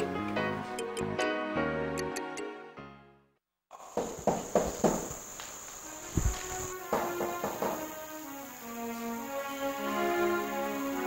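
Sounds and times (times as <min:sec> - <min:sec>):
high-pitched insect trill: 0:03.8 - 0:11.0
sharp knocks or rustles: 0:03.9 - 0:07.9.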